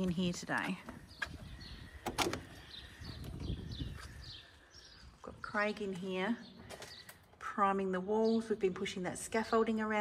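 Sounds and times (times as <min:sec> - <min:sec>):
faint birds chirping: 0:00.0 - 0:10.0.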